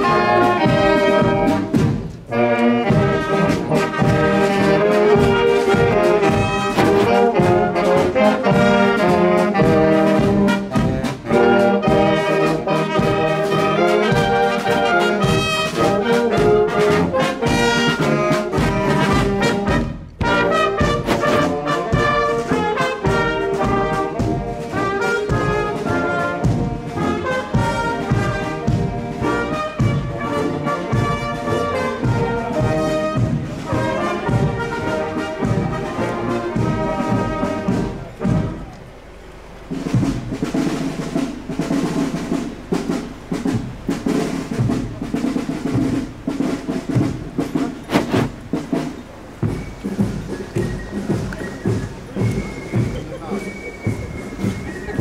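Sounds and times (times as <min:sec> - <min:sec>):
drum beats: 0:00.0 - 0:55.0
marching brass band playing: 0:00.0 - 0:55.0.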